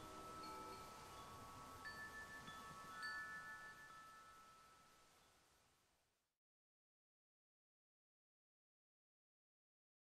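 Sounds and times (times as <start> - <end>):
faint wind chimes ringing: 0.0 - 5.7.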